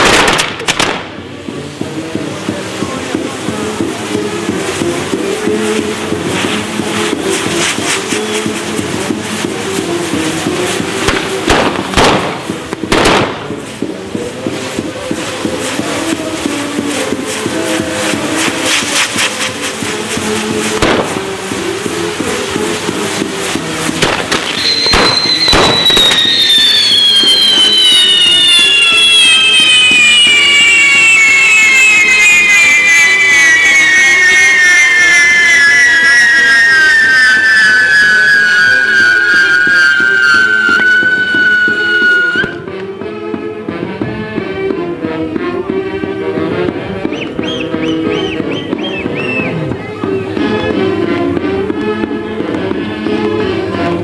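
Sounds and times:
fireworks bangs and crackles: 0.0 - 54.0
music: 0.0 - 54.0
loud whistle with falling pitch: 24.5 - 42.8, 47.0 - 50.8.

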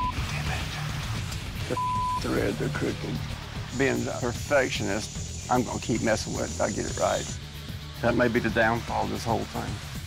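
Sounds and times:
background music with bass line: 0.0 - 10.0
censor bleep tone: 1.7 - 2.2.

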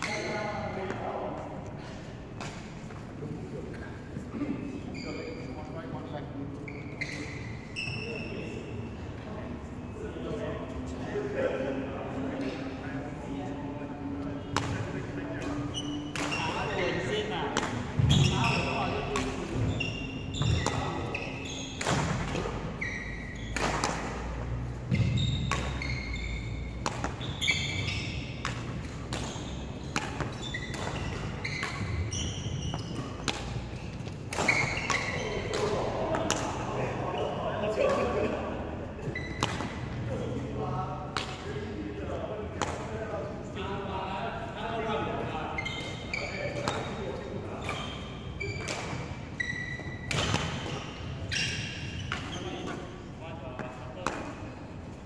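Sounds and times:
shoe squeaks on floor: 0.0 - 0.9, 4.6 - 9.0, 14.6 - 36.1, 39.0 - 40.2, 45.3 - 53.0
racket hitting shuttlecock: 14.5 - 16.7, 17.5 - 36.8, 39.3 - 39.8, 46.6 - 47.0, 50.0 - 50.9, 54.0 - 54.4.

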